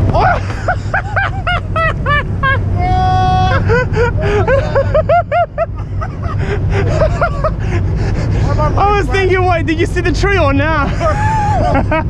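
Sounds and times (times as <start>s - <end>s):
wind rumble on microphone: 0.0s - 12.0s
people laughing: 0.2s - 9.0s, 10.8s - 12.0s.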